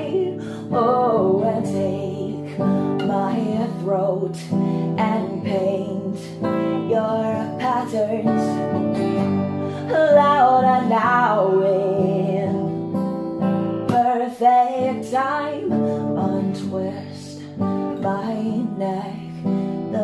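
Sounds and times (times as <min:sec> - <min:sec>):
wordless sung vocal: 0:00.0 - 0:12.7
acoustic guitar strumming: 0:00.0 - 0:20.0.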